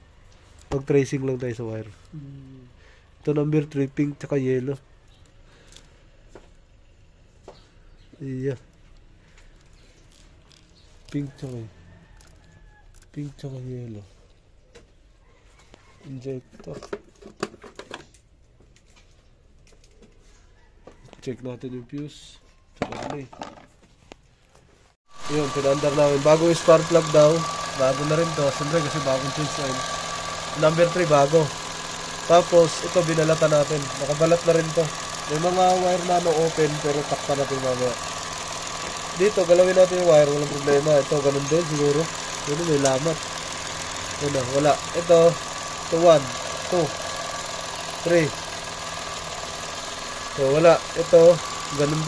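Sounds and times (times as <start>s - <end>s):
car engine humming: 25.1s - 52.0s
man talking: 25.2s - 29.9s, 30.6s - 31.6s, 32.2s - 38.0s, 39.1s - 43.2s, 44.1s - 47.0s, 48.0s - 48.4s, 50.4s - 52.0s.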